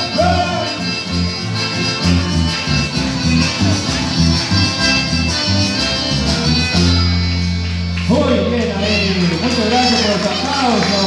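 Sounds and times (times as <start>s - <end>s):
latin band music: 0.0s - 11.0s.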